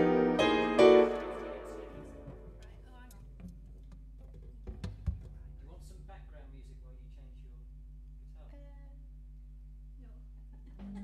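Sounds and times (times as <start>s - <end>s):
keyboard chord: 0.0s - 2.6s
low pulsing hum: 5.4s - 11.0s.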